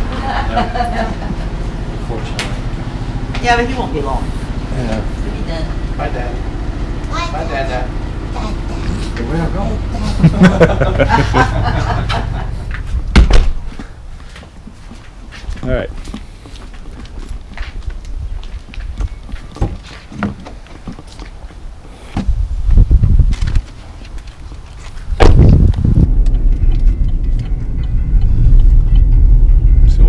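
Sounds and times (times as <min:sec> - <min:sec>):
vehicle rumbling on road: 0:00.0 - 0:30.0
heavy thump: 0:12.1 - 0:13.9, 0:25.2 - 0:30.0
light footsteps: 0:12.5 - 0:22.4, 0:23.2 - 0:29.2.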